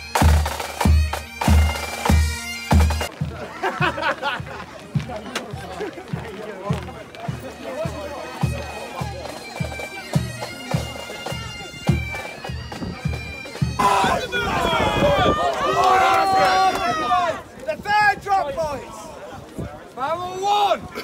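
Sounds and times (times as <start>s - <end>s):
bagpipes playing a march: 0.0s - 3.3s, 6.1s - 14.8s
loud shouting voices: 13.7s - 21.0s.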